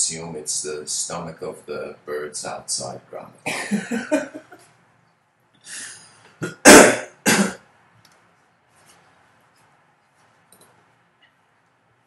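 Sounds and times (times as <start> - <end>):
person coughing: 3.5 - 4.1, 6.4 - 7.6
breath: 5.6 - 6.4.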